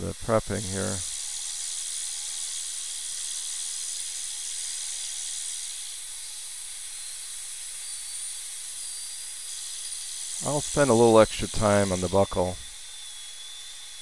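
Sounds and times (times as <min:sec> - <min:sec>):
dental drill air and water hiss: 0:00.0 - 0:14.0.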